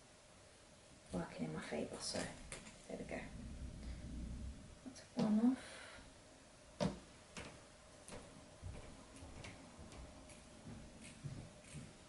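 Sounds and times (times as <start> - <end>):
scissors snipping fabric: 11.0 - 11.9.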